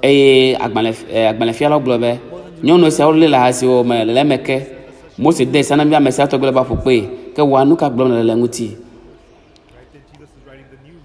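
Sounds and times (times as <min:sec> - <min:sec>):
man talking into a microphone: 0:00.0 - 0:09.0.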